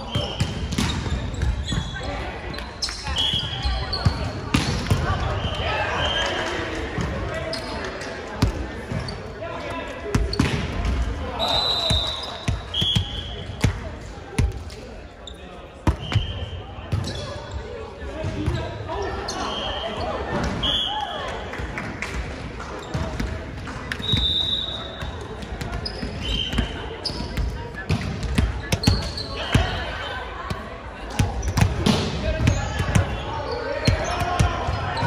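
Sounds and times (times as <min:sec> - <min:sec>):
volleyball hits: 0:00.0 - 0:02.1, 0:03.1 - 0:06.2, 0:10.1 - 0:11.1
sneaker squeaks: 0:00.0 - 0:06.4, 0:07.4 - 0:07.9, 0:11.3 - 0:13.6, 0:15.1 - 0:21.1, 0:22.8 - 0:23.3, 0:23.9 - 0:30.1, 0:31.0 - 0:35.0
players calling in echoing hall: 0:00.0 - 0:35.0.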